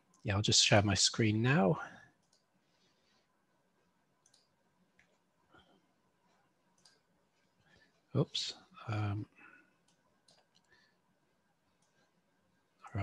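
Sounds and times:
computer mouse clicks: 2.2 - 2.6, 4.2 - 5.3, 6.7 - 7.2, 9.8 - 10.8, 11.8 - 12.1.

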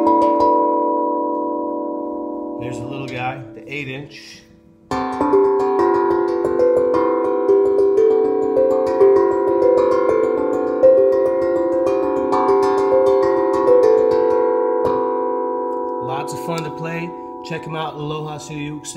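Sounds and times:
steel tongue drum melody: 0.0 - 18.9.

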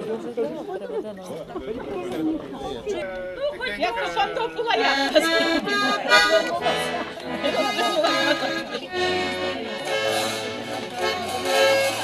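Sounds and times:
people chatting: 0.0 - 12.0
accordion playing: 3.8 - 12.0.

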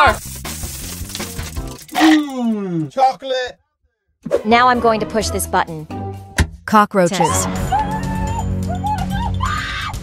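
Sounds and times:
background music: 0.0 - 3.0, 4.3 - 10.0
small hard candies clattering: 0.2 - 2.2.

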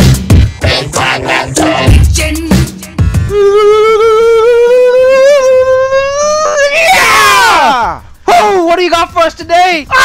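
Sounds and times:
man yelling and screaming: 3.3 - 8.6.

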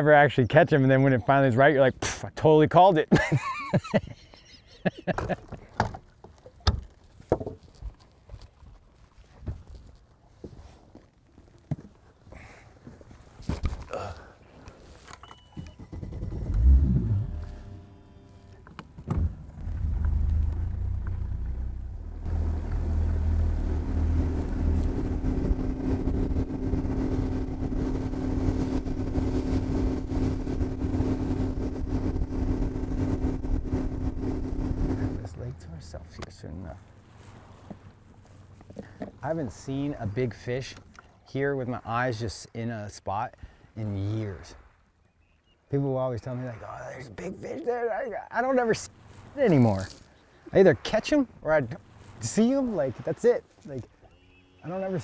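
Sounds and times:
outboard motor droning: 15.0 - 41.5, 47.1 - 55.0
loud low rumble: 19.2 - 35.6.

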